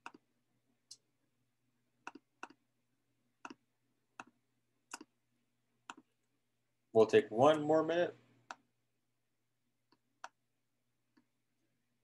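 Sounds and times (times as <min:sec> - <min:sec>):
computer mouse clicks: 0:00.0 - 0:00.2, 0:02.0 - 0:02.6, 0:03.4 - 0:03.6, 0:04.2 - 0:05.1, 0:05.8 - 0:06.1, 0:09.9 - 0:10.4
man speaking: 0:07.0 - 0:08.2.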